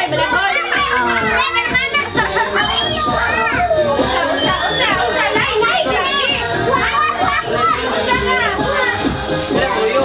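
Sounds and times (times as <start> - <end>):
children chattering and shouting: 0.0 - 10.0
music playing: 0.0 - 10.0.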